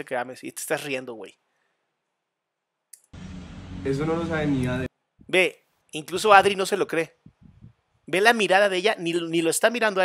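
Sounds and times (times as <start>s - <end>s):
man's voice: 3.9s - 7.2s.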